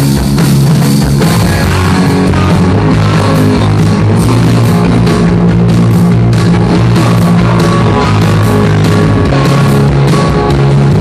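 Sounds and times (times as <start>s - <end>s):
bass guitar: 0.0s - 11.0s
drum kit: 0.0s - 11.0s
electric guitar: 0.0s - 11.0s.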